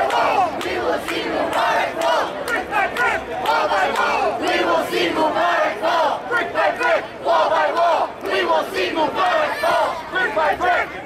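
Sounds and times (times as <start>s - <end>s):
crowd chanting in unison: 0.0s - 11.0s.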